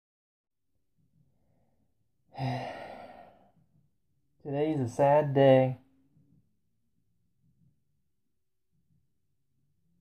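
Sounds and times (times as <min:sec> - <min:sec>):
man sighing: 0:02.3 - 0:03.4.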